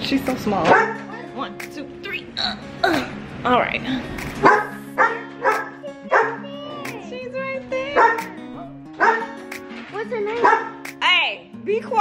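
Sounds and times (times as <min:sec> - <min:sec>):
small dog barking: 0:00.7 - 0:01.1, 0:04.4 - 0:06.4, 0:08.0 - 0:08.4, 0:09.0 - 0:09.4, 0:10.4 - 0:10.8.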